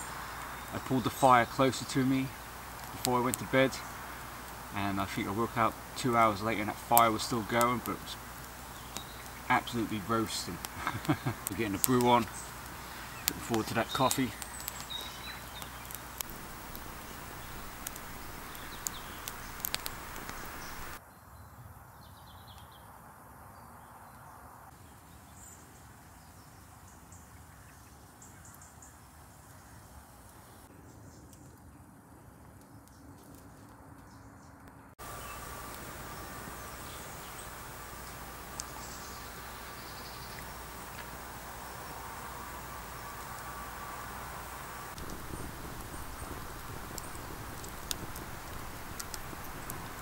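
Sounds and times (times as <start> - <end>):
birds calling: 0.0 - 21.0, 34.1 - 50.0
wood fire crackling: 0.0 - 21.0, 35.0 - 50.0.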